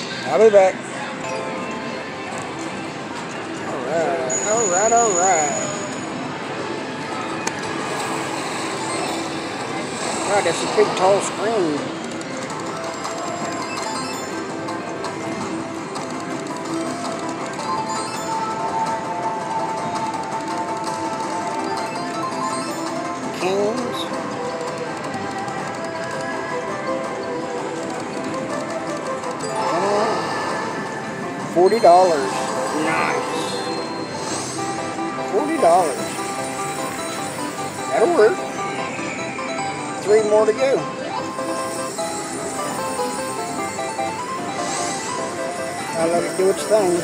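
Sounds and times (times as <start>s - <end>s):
slot machine music and jingles: 0.0s - 47.0s.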